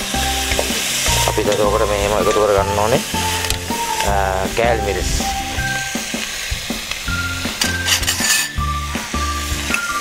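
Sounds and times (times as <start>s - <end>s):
background music with bass line: 0.0s - 10.0s
chicken and vegetables sizzling in pot: 0.0s - 10.0s.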